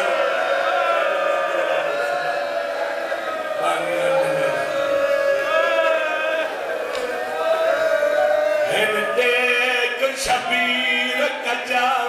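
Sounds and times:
men chanting mournfully: 0.0 - 12.0.

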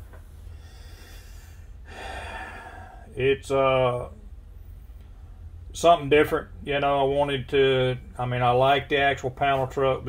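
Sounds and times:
low room hum: 0.0 - 10.0
man breathing: 0.4 - 3.2.

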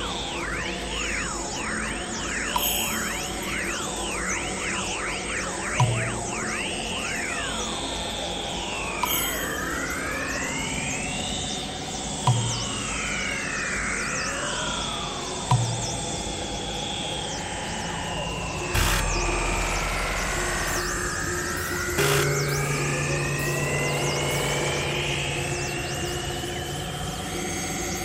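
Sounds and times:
synthesizer tones sweeping in pitch: 0.0 - 9.0, 18.7 - 27.6
short low hit: 18.8 - 22.9.

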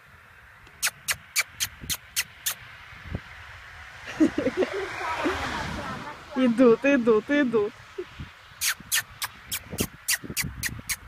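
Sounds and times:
sharp tongue clicks: 0.7 - 2.6, 8.6 - 11.0
short voiced call: 8.6 - 11.0.

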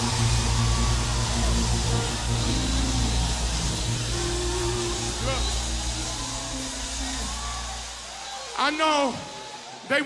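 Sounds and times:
organ and bass sustained chords: 0.0 - 7.9
noise of large congregation: 0.0 - 10.0.

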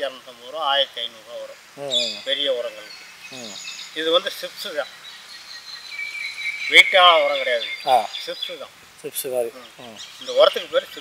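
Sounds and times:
man talking: 0.0 - 4.9, 6.7 - 11.0
insects trilling: 0.0 - 11.0.

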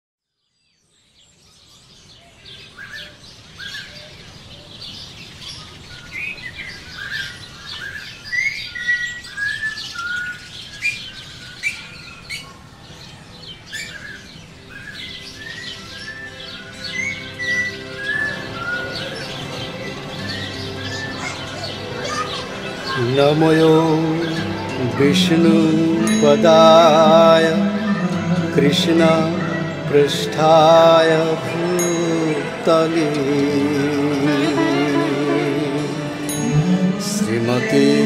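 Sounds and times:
dense bird chorus: 0.4 - 38.0
held music tones: 16.4 - 38.0.

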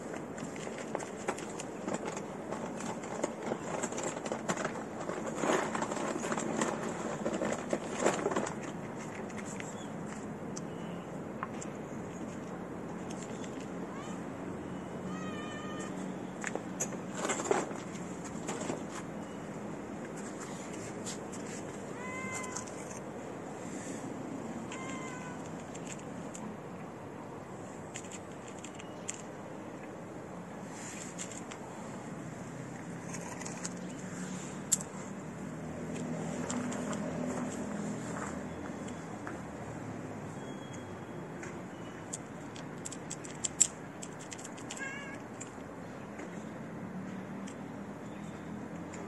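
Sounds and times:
cat meowing: 13.9 - 14.3, 15.0 - 16.1, 21.9 - 22.9, 24.7 - 25.5, 44.7 - 45.2
sharp clicks and ticks: 42.1 - 45.7.

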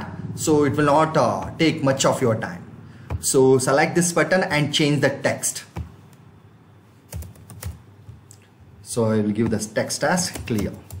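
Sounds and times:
keyboard typing: 5.6 - 6.2, 7.1 - 8.4, 9.4 - 11.0.

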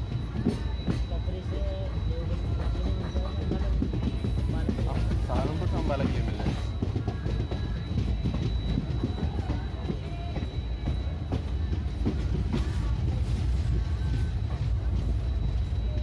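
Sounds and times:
train low rumble: 0.0 - 16.0
wheels clicking on track: 0.0 - 16.0.

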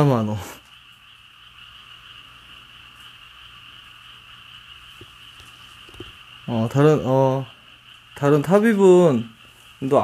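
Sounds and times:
high-pitched frog or insect trill: 0.0 - 10.0
low steady hum: 0.0 - 10.0.

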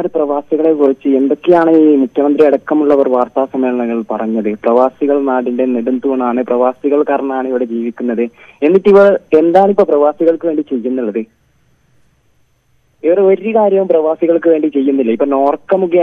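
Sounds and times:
person talking over telephone: 13.0 - 16.0.

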